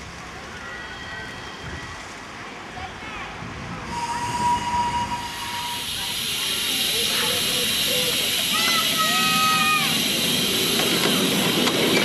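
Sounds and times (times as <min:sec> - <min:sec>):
steam hissing: 0:03.8 - 0:12.0
steam locomotive whistle: 0:03.9 - 0:06.2.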